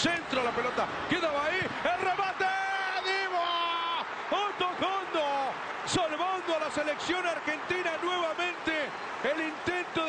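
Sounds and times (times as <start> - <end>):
commentator talking excitedly: 0.0 - 10.0.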